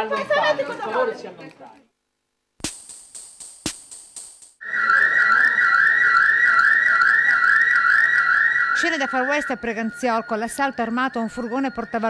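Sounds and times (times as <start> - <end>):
electronic alarm warbling: 4.6 - 12.0.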